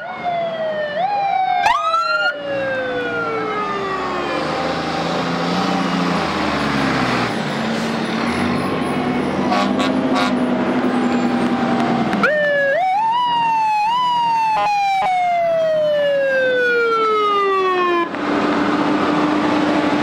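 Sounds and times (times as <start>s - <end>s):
mechanical siren wailing: 0.0s - 5.2s, 12.2s - 18.2s
fire truck engines: 0.0s - 20.0s
fire truck horns: 9.2s - 12.2s, 14.4s - 15.3s.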